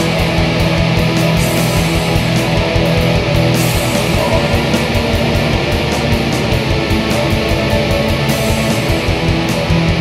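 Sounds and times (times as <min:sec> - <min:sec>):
distorted electric guitars: 0:00.0 - 0:10.0
fast drumming: 0:01.4 - 0:10.0.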